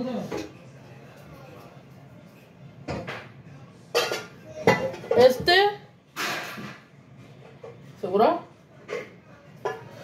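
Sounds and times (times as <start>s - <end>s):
cooking pots clattering: 3.9s - 10.0s.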